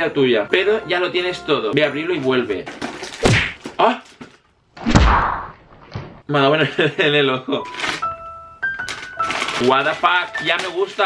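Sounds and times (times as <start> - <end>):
wrapping paper tearing: 7.6 - 8.1, 8.9 - 11.0.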